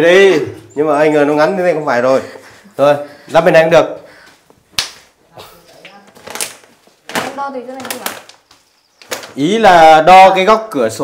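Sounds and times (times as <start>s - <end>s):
distant conversation: 0.0s - 4.4s, 5.1s - 6.4s.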